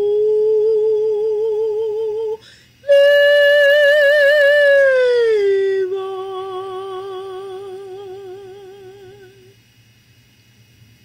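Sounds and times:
woman singing with vibrato: 0:00.0 - 0:09.6
low steady hum: 0:00.0 - 0:11.0.

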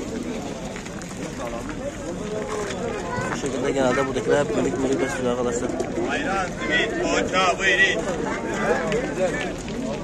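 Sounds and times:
background talk of people: 0:00.0 - 0:10.0
close speech: 0:00.0 - 0:10.0
steady outdoor noise: 0:00.0 - 0:10.0.

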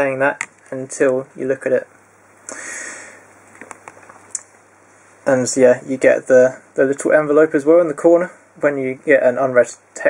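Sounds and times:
soft breathy hiss: 0:00.2 - 0:08.8.

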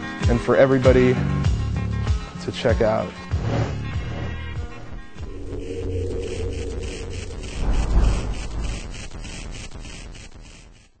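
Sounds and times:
low noisy swell: 0:04.5 - 0:09.7
faint even pulsing: 0:04.6 - 0:10.3.

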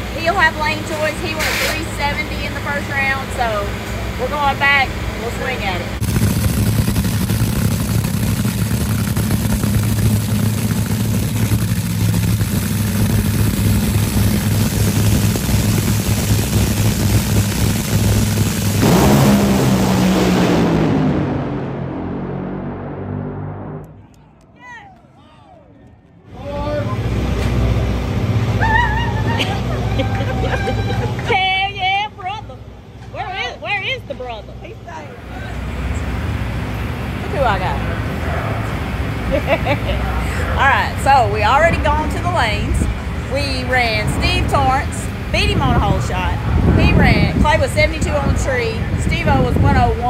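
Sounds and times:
dragster engine roaring: 0:00.0 - 0:24.6, 0:25.5 - 0:50.0
excited voices: 0:24.0 - 0:27.0, 0:28.5 - 0:31.9.

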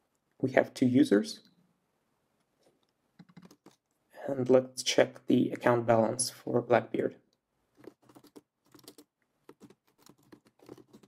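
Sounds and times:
faint keyboard keystrokes: 0:03.2 - 0:03.8, 0:07.8 - 0:11.0.

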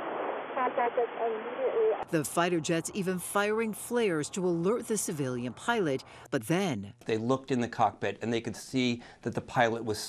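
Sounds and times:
radio hiss: 0:00.0 - 0:06.4.

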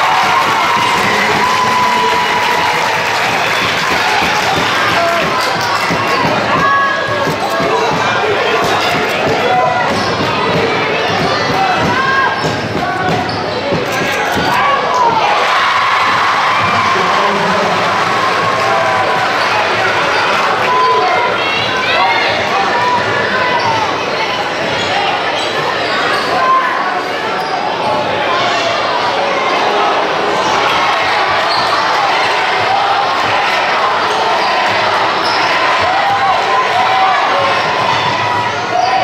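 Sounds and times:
crowd chatter and calls: 0:00.0 - 0:39.0.

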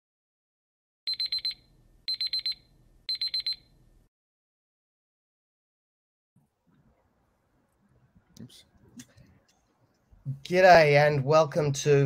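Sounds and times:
timer alarm beeping: 0:01.1 - 0:03.7.

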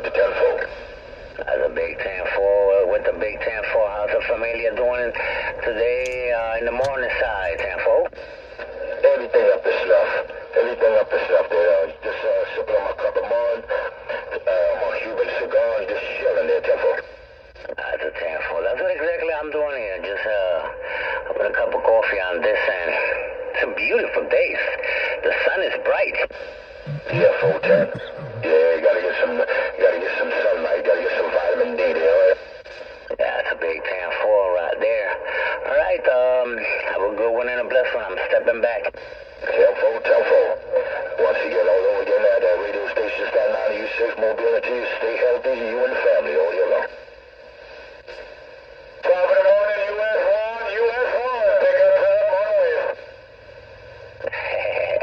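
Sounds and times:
garbled radio voices: 0:00.0 - 0:16.9, 0:24.8 - 0:32.4.

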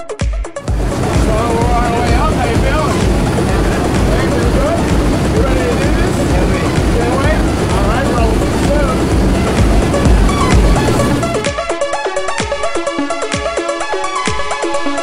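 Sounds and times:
plane engine drone in cabin: 0:00.6 - 0:11.5
indistinct voices: 0:00.7 - 0:11.5.

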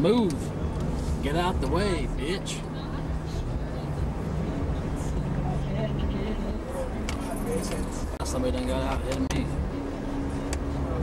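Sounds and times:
car engine and tyres rumbling: 0:00.0 - 0:11.0
faint voices: 0:00.0 - 0:11.0.

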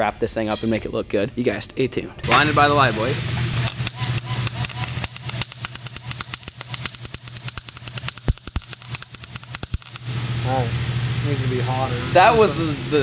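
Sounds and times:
welding arc crackling: 0:02.2 - 0:11.4.

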